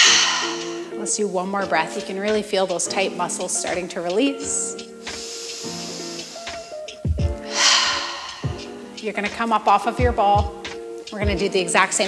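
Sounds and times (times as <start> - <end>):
woman breathing: 0.0 - 1.0, 5.0 - 9.0
soft background music: 0.0 - 12.0.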